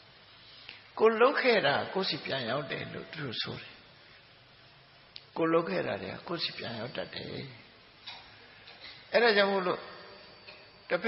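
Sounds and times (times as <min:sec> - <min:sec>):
man preaching: 0:01.0 - 0:03.8, 0:05.4 - 0:07.6, 0:09.1 - 0:10.0.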